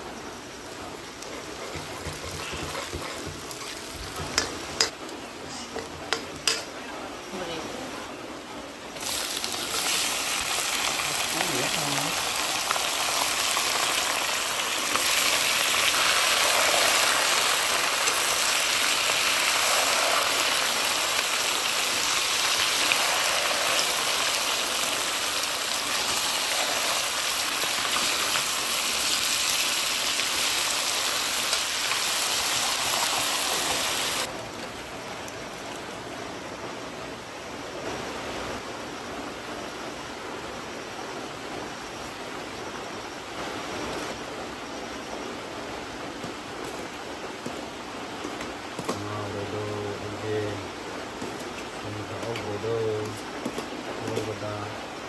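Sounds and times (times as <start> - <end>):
steady hissing noise: 0.0 - 55.0.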